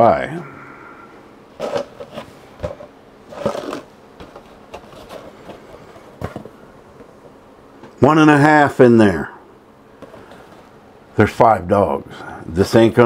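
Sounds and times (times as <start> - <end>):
cardboard rustle: 1.6 - 6.6
cardboard box knocks and clicks: 6.2 - 6.6.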